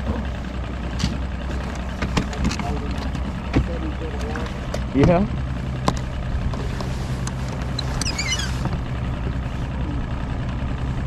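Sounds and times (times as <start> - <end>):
boat motor idling: 0.0 - 11.0
gear knocking on deck: 2.0 - 6.1.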